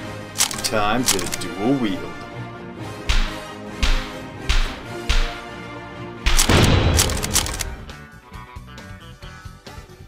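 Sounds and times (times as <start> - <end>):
background music score: 0.0 - 10.0.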